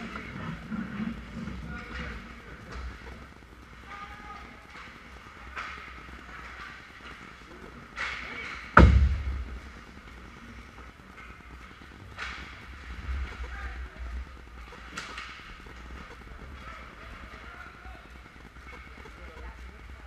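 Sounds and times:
faint voices: 0.0 - 20.0.

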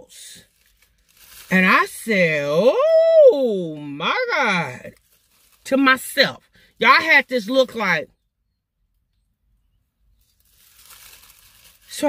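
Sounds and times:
plastic bag crinkling: 0.4 - 2.1, 4.7 - 6.2, 10.1 - 12.0.

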